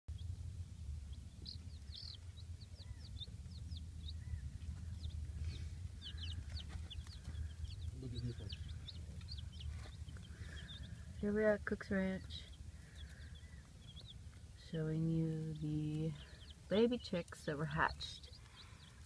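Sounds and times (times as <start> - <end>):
chicks peeping: 0.1 - 19.0
low steady rumble: 0.1 - 19.0.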